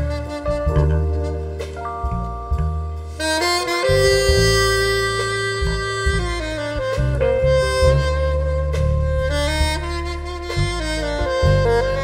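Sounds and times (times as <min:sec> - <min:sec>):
live band with electric bass: 0:00.0 - 0:12.0
saxophone slow melody: 0:00.0 - 0:12.0.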